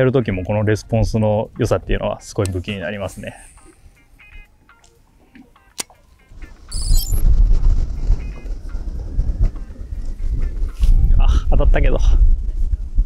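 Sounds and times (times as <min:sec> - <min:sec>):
quiet plucked background music: 0:00.0 - 0:07.1
wind buffeting microphone: 0:06.3 - 0:13.0.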